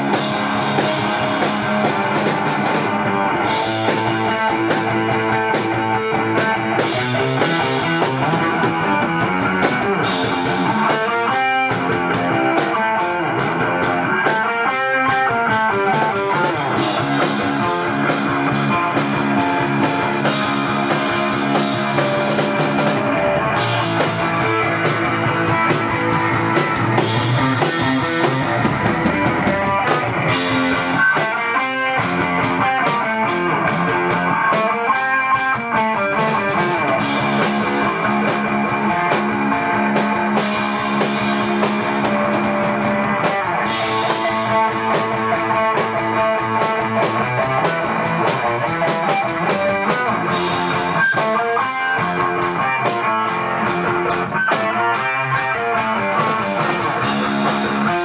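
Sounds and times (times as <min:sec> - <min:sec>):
drum and cymbal hits: 0:00.0 - 0:58.0
electric guitar: 0:00.0 - 0:58.0
rock band playing: 0:00.0 - 0:58.0.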